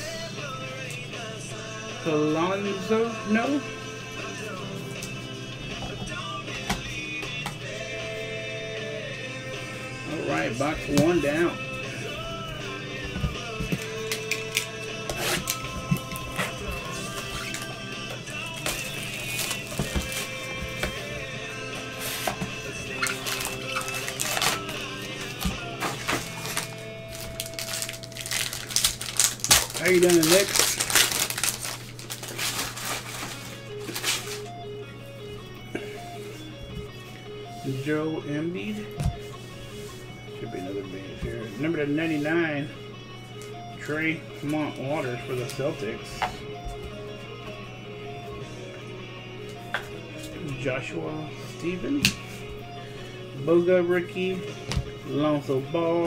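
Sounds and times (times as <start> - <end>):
background music: 0.0 - 56.0
cellophane wrap crinkling and tearing: 18.6 - 20.4, 22.9 - 34.5.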